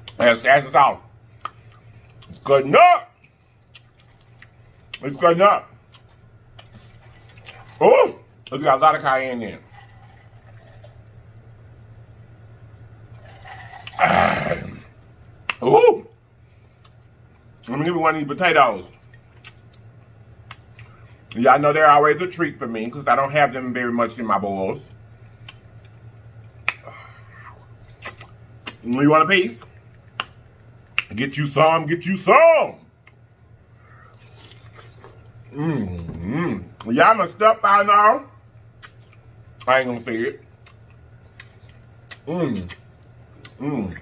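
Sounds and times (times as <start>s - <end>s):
low steady hum: 0.0s - 44.0s
man swallowing: 13.7s - 15.6s.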